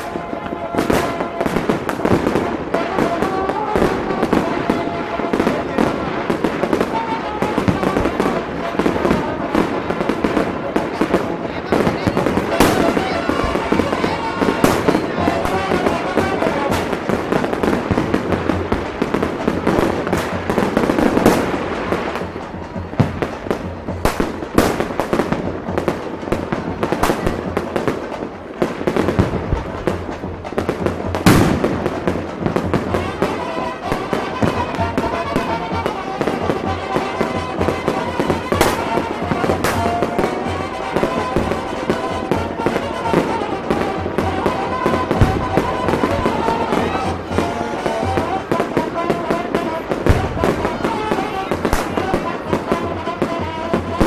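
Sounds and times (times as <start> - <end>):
crowd voices: 0.0 - 54.0
fireworks bangs: 0.0 - 54.0
music: 0.0 - 54.0.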